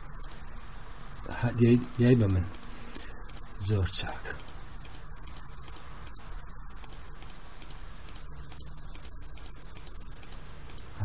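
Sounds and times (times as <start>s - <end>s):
open microphone hiss and hum: 0.0s - 11.0s
faint ticking: 0.1s - 0.6s, 1.4s - 11.0s.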